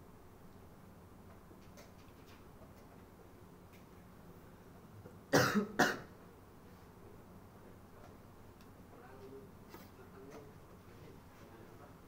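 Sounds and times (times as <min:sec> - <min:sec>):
person coughing: 0:05.3 - 0:06.1.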